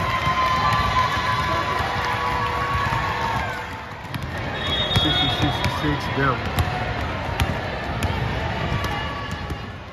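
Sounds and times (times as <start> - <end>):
basketballs bouncing on hardwood floor: 0.0 - 9.8
players' voices and chatter: 0.0 - 9.9.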